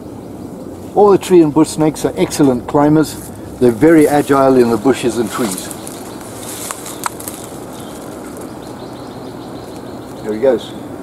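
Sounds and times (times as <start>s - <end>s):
rustling bush leaves and twigs: 0.2s - 10.7s.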